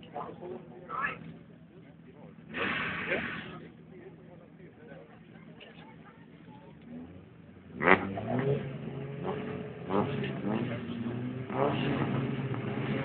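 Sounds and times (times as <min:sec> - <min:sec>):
racing car engines revving: 0:00.0 - 0:04.4, 0:05.1 - 0:13.0.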